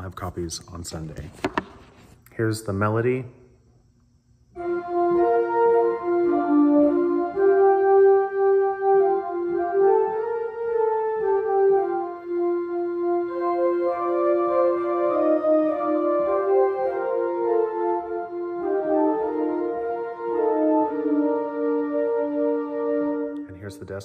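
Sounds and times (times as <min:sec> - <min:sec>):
organ playing a hymn: 0:04.6 - 0:24.0.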